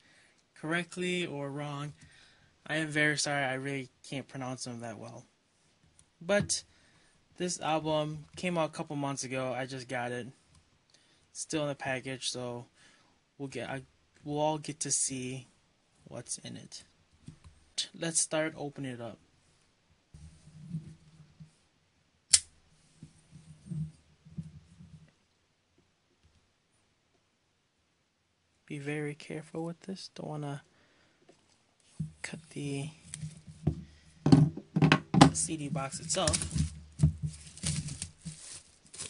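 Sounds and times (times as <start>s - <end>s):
plastic-wrapped box handling: 35.8s - 39.0s.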